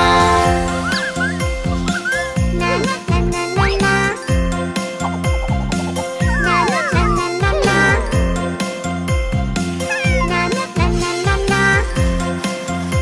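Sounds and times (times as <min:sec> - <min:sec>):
upbeat cartoon music: 0:00.0 - 0:13.0.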